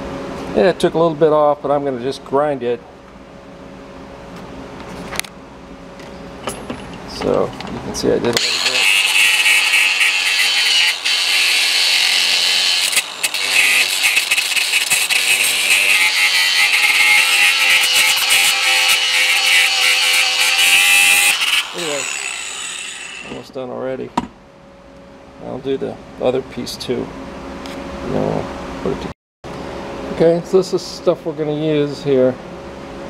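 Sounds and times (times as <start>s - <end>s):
angle grinder grinding metal: 8.4s - 23.5s.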